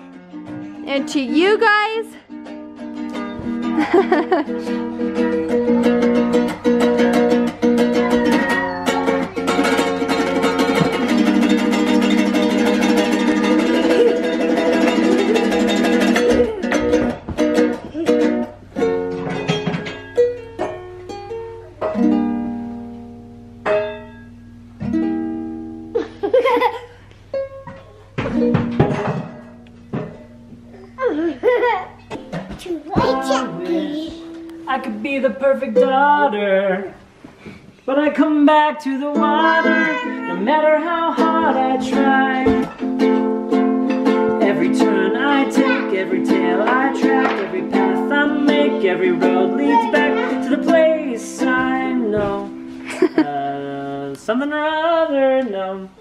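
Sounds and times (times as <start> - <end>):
out of tune ukulele strumming: 0.0 - 26.0, 27.2 - 30.8, 31.4 - 36.9, 37.9 - 53.5.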